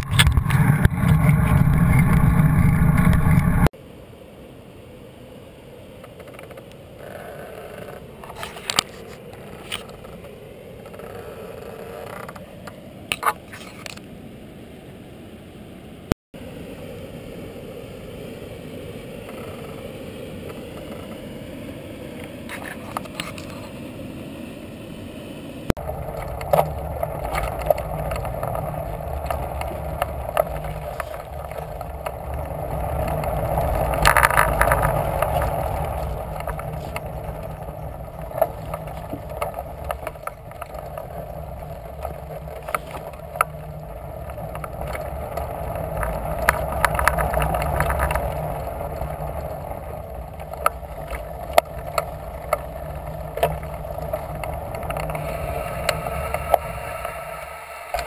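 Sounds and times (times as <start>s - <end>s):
bicycle tyres rumbling on planks: 0.0s - 3.7s, 25.8s - 57.3s
small clacks and rattles: 25.8s - 56.6s.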